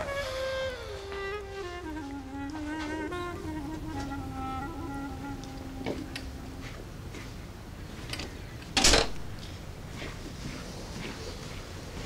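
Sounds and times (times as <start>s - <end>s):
door shutting thud: 8.8s - 9.2s.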